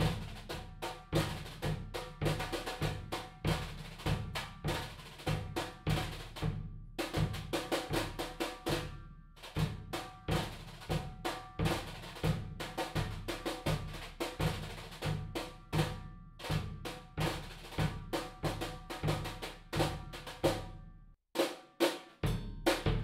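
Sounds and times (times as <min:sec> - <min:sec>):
brush strokes on snare drum: 0:00.0 - 0:20.6
bass drum: 0:00.0 - 0:20.8, 0:22.2 - 0:23.0.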